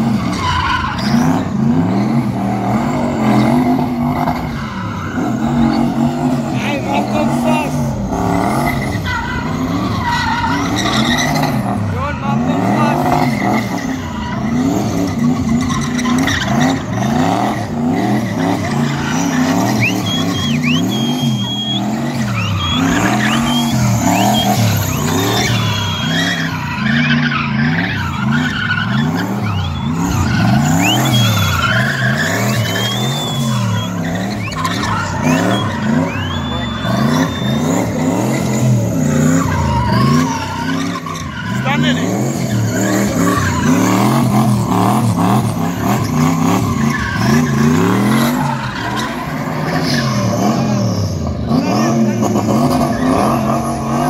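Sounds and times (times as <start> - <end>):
car engine revving: 0.0 - 54.0
tyres squealing and chirping: 0.1 - 51.6.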